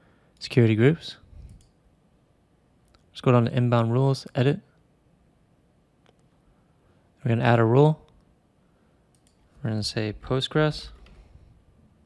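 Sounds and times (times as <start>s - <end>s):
faint computer mouse clicks: 1.5s - 1.8s, 9.1s - 9.4s.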